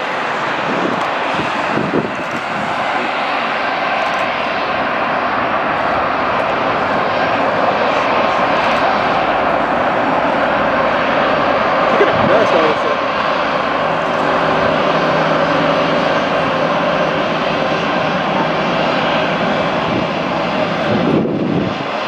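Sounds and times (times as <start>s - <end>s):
jet engines running: 0.0s - 22.0s.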